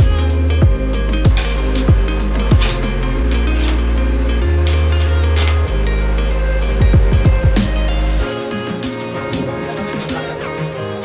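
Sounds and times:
background music with bass and drums: 0.0s - 11.0s.

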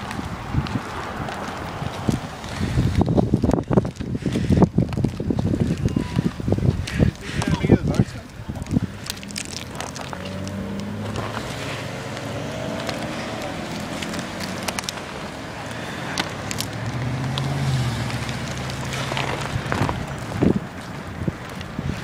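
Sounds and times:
cars passing: 0.0s - 22.0s.

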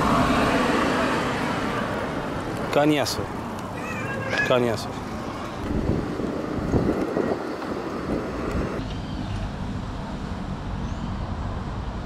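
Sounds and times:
vehicle noise: 0.0s - 12.0s
wind buffeting microphone: 1.9s - 8.8s.

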